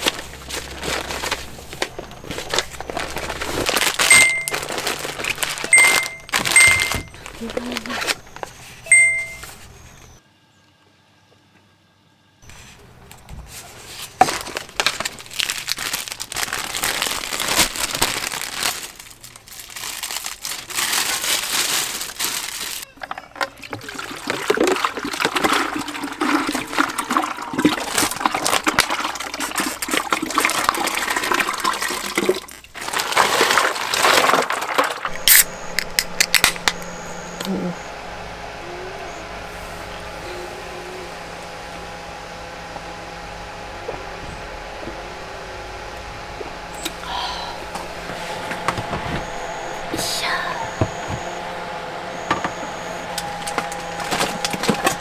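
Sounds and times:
ice and water pouring: 0:00.0 - 0:07.8, 0:14.2 - 0:36.0
packaging crinkling: 0:00.0 - 0:08.8, 0:12.8 - 0:22.9, 0:24.5 - 0:38.4, 0:53.0 - 0:55.0
faint hum: 0:00.0 - 0:24.0, 0:30.9 - 0:55.0.

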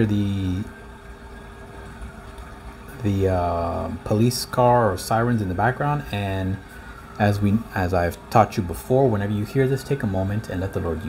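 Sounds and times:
distant police siren: 0:00.0 - 0:11.0
low background noise: 0:00.0 - 0:11.0.

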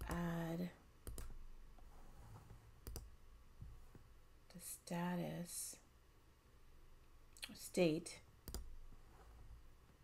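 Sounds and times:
computer mouse click: 0:01.0 - 0:01.4, 0:02.8 - 0:03.1, 0:08.4 - 0:08.7.

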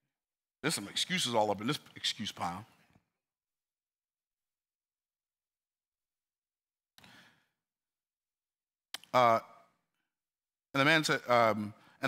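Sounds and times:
man breathing softly: 0:07.0 - 0:07.6.

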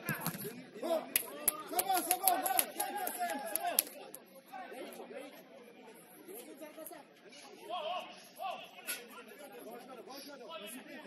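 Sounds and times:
people chattering and calling out: 0:00.0 - 0:11.0.

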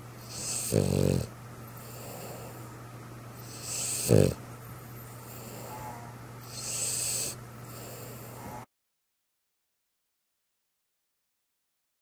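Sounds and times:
faint steady hum: 0:00.0 - 0:08.7
dog breathing noisily: 0:00.2 - 0:02.7, 0:03.4 - 0:04.4, 0:06.4 - 0:08.4.

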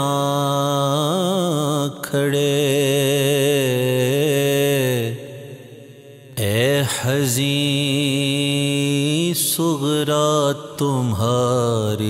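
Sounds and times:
man singing devotional song: 0:00.0 - 0:12.0.

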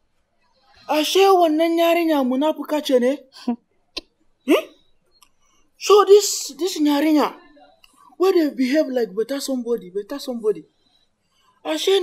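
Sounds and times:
man speaking: 0:05.8 - 0:07.5, 0:08.2 - 0:10.6, 0:11.7 - 0:12.0.

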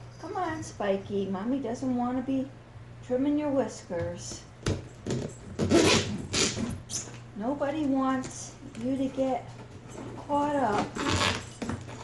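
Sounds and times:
cutting tool through cardboard box: 0:10.7 - 0:12.0.

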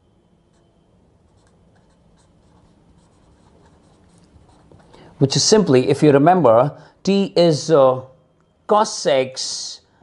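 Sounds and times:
pen scratching on paper: 0:01.3 - 0:05.0.

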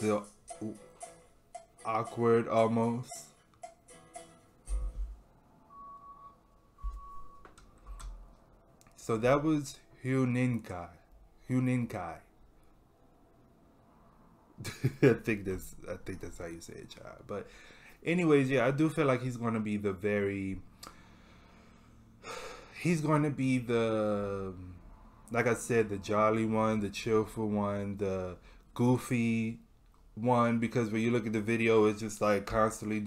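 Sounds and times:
man speaking: 0:00.0 - 0:00.8, 0:01.8 - 0:03.4, 0:09.0 - 0:12.3, 0:15.0 - 0:20.6, 0:22.8 - 0:33.0
faint steady tone: 0:04.2 - 0:10.2.

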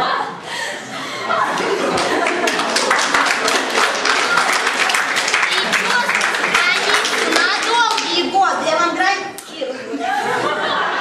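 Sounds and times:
audience clapping: 0:01.5 - 0:08.5.

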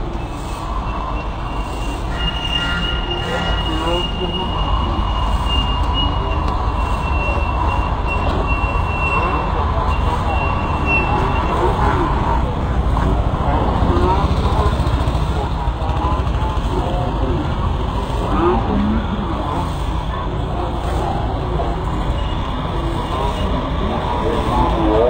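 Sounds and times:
low outdoor rumble: 0:00.0 - 0:25.0
people talking indistinctly: 0:02.0 - 0:25.0.

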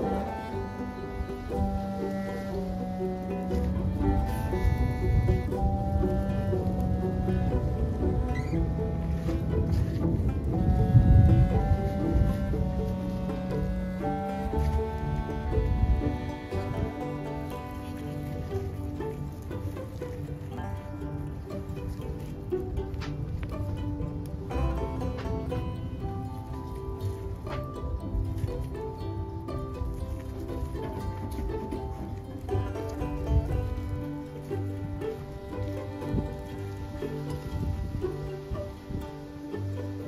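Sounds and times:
plucked-string instrumental music: 0:00.0 - 0:40.0.

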